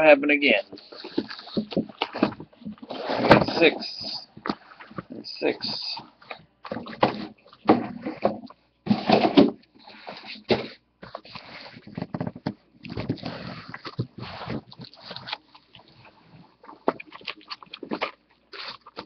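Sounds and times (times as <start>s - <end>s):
plastic wrap rustling: 0.6s - 8.5s, 12.8s - 19.0s.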